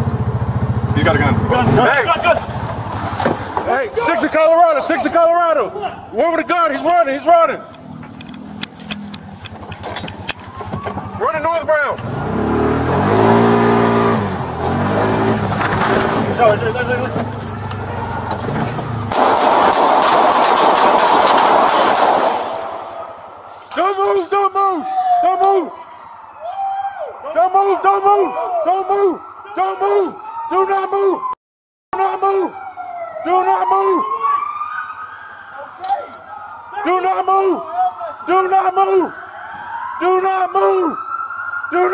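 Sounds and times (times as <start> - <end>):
car engine accelerating: 0.0 - 4.4, 7.7 - 20.3
police siren wailing: 1.0 - 20.5, 21.5 - 31.4, 32.0 - 41.9
person shouting: 23.8 - 25.8, 26.4 - 30.1, 32.0 - 32.6.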